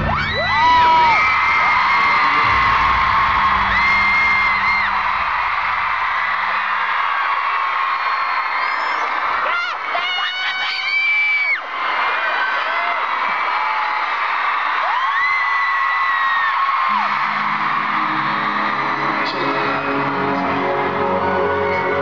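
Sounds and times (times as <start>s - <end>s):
long high scream: 0.0s - 7.3s, 7.9s - 11.7s, 14.8s - 19.8s
crowd screaming and cheering: 0.0s - 22.0s.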